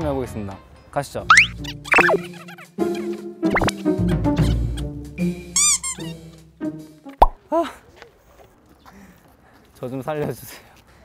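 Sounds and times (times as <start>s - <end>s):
background music: 0.1s - 7.4s
springy swooping tone: 1.3s - 2.3s
sharp pop: 7.2s - 7.4s.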